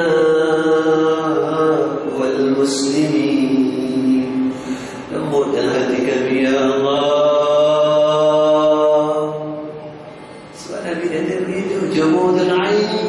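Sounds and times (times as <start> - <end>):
man chanting into a microphone: 0.0 - 9.8, 10.6 - 13.0.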